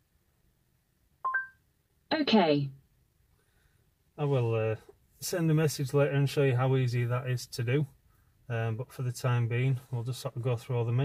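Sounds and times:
two short rising beeps: 1.3 - 1.6.

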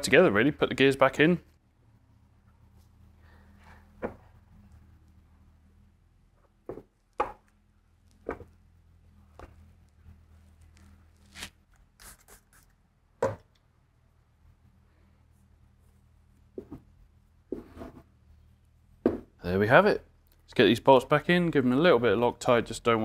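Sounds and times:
faint steady hum: 0.0 - 23.0.

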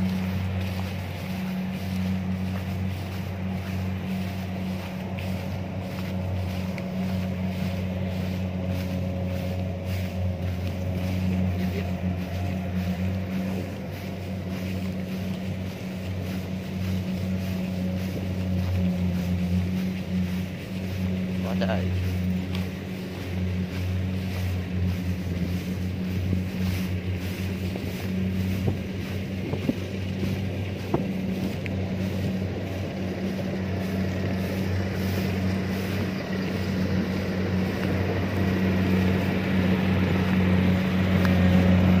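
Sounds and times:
combine harvester diesel engine: 0.0 - 42.0.

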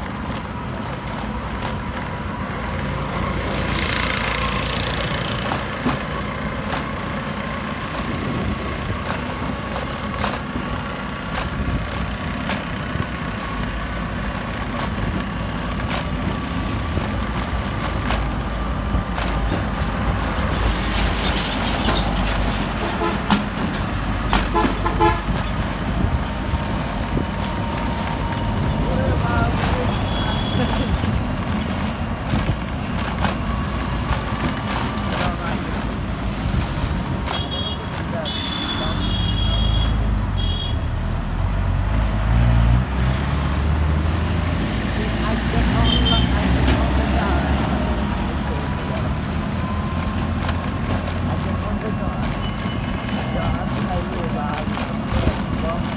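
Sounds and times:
bus and motorcycle engines: 0.0 - 55.9
heavy engine rumbling: 0.0 - 55.9
vehicle horn beeps: 24.6 - 25.3, 29.9 - 30.9, 37.3 - 40.9, 45.8 - 46.4.

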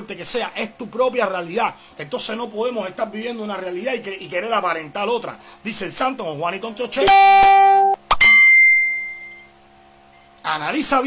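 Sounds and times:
bell-like ding: 7.0 - 9.5.

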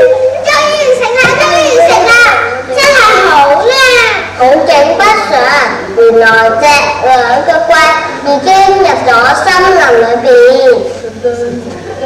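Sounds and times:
young children's voices: 0.0 - 11.5.

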